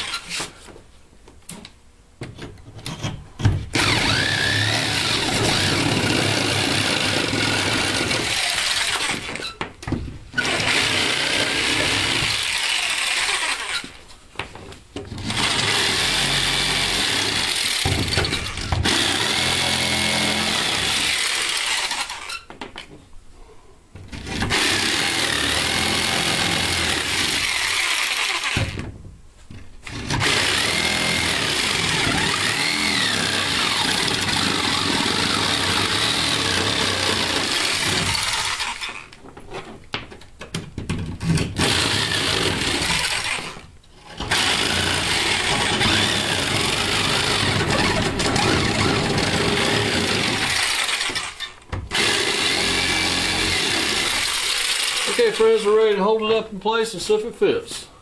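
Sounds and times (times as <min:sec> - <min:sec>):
jigsaw cutting through board: 0:03.8 - 0:09.5, 0:10.4 - 0:14.0, 0:15.2 - 0:22.4, 0:24.2 - 0:28.8, 0:29.9 - 0:39.1, 0:41.5 - 0:55.6.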